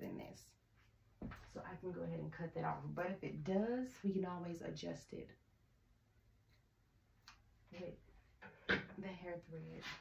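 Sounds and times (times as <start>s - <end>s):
woman speaking: 0.0s - 0.6s, 1.5s - 5.4s, 7.7s - 8.0s, 8.9s - 10.0s.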